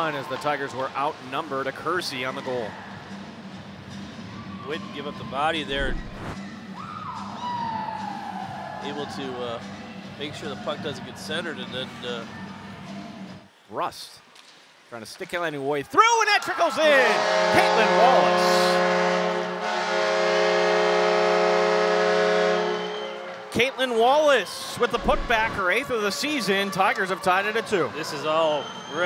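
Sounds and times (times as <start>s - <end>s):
whistle-like tone sliding down: 5.6s - 8.3s
arena goal horn chord: 16.9s - 23.4s.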